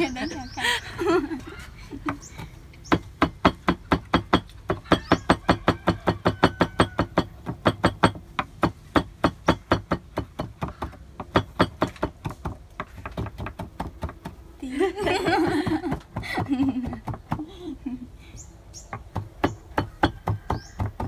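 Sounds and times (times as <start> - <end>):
knife chopping on wooden board: 2.0 - 14.4, 18.9 - 21.0.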